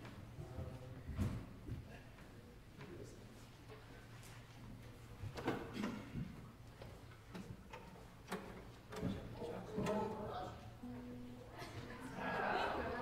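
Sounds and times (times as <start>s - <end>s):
clicks and knocks of instruments: 5.3s - 10.0s
low held note: 10.8s - 12.2s.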